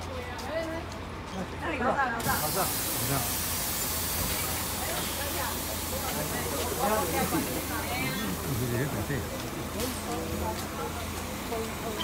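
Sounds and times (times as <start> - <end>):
bus engine idling: 0.0 - 12.0
compressed air hissing: 2.2 - 8.5.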